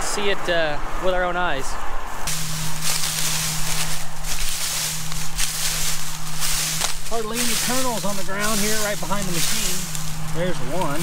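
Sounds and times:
combine humming: 2.1s - 11.0s
corn stalks crunching underfoot: 2.2s - 11.0s.

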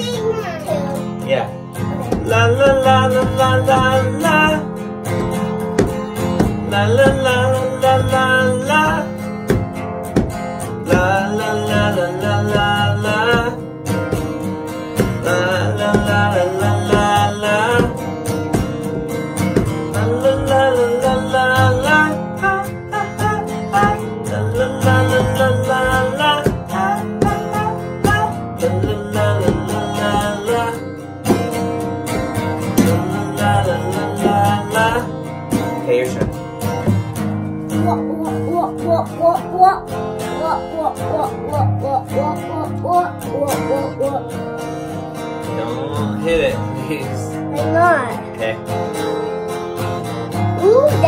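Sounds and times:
person singing wordless melody: 0.0s - 36.5s, 37.7s - 49.4s
acoustic guitar strumming: 0.0s - 51.0s.

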